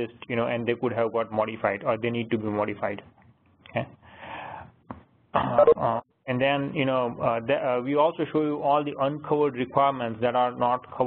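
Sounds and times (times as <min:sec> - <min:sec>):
breath: 0:04.0 - 0:04.8
man speaking: 0:05.5 - 0:11.0.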